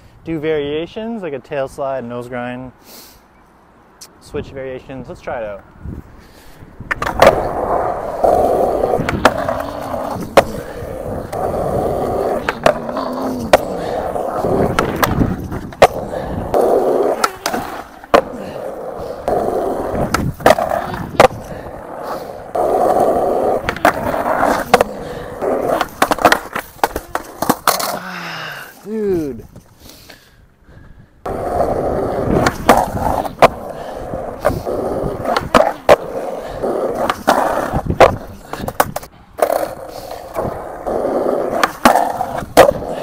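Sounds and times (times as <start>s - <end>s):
skateboard wheels rolling on concrete: 0.0s - 43.0s
skateboard clacks: 6.8s - 28.0s, 31.2s - 43.0s
board hitting concrete ledge: 8.9s - 10.6s, 14.4s - 18.4s, 25.5s - 28.0s, 32.3s - 33.6s.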